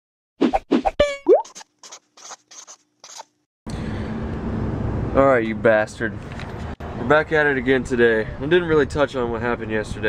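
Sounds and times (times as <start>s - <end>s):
scratchy pen-like strokes: 1.6s - 3.3s.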